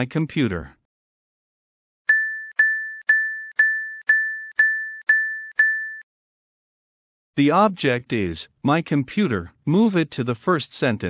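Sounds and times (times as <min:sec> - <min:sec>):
bright bell ding: 0:02.1 - 0:06.0.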